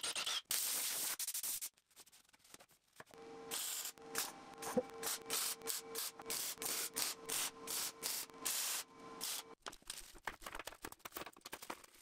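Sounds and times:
welder hum: 0:03.2 - 0:09.6.

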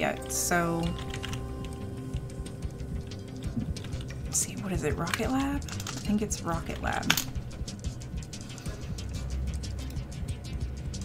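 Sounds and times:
background music: 0:00.0 - 0:11.0
computer keyboard typing: 0:00.8 - 0:07.4.

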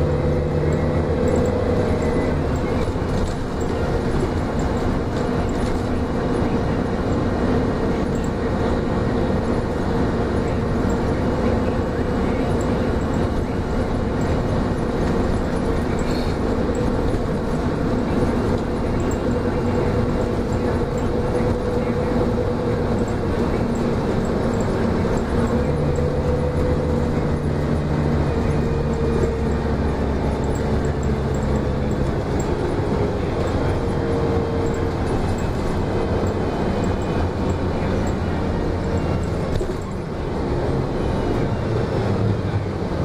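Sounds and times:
bus engine hum: 0:00.0 - 0:43.0
road noise: 0:00.0 - 0:43.0.

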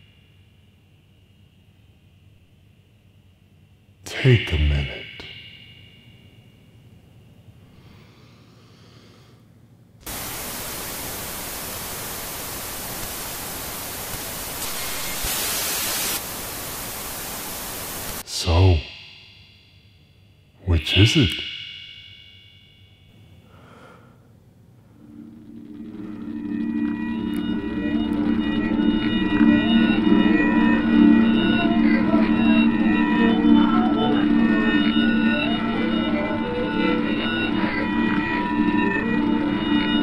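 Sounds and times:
static hiss: 0:10.0 - 0:19.4
ambient drone music: 0:18.2 - 0:40.0.

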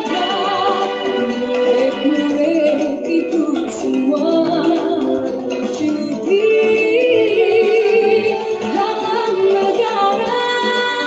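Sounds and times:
backing music: 0:00.0 - 0:11.0.

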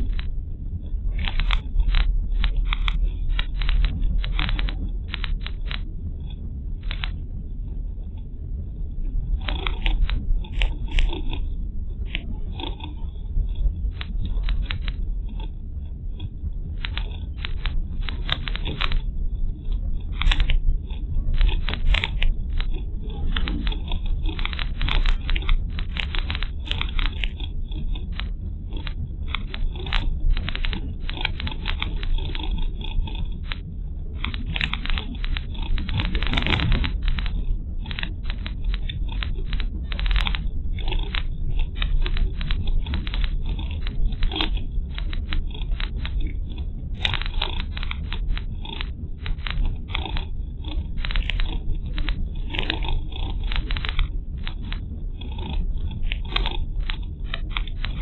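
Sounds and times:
crackling and clicking: 0:00.0 - 0:58.0.

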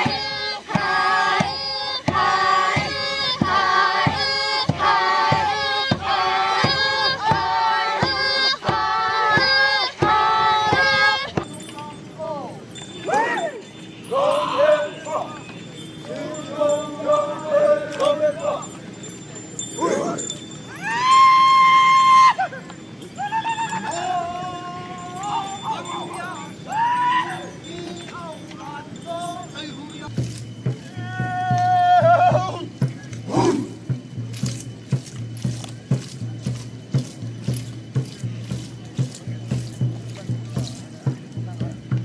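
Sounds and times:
high held vocal cry: 0:19.8 - 0:22.6, 0:23.2 - 0:27.6, 0:30.9 - 0:32.7.

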